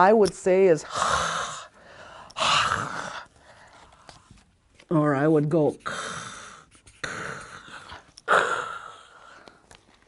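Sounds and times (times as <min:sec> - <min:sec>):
woman making raspy throat sound: 0:02.3 - 0:03.3.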